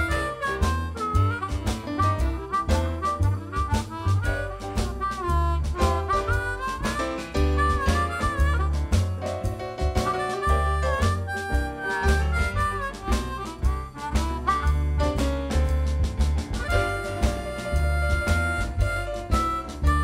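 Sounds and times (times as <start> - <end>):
amplified blues harmonica: 0.0 - 15.4, 16.5 - 20.0
steady drum beats: 0.0 - 20.0
upright bass line: 0.0 - 20.0.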